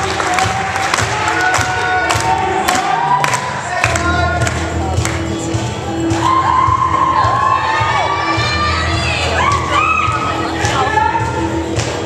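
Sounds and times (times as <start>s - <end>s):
audience cheering and shouting: 0.0s - 4.4s, 6.0s - 11.5s.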